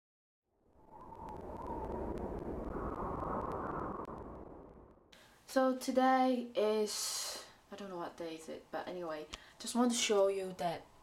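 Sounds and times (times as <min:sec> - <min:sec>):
rushing noise: 0:00.8 - 0:05.0.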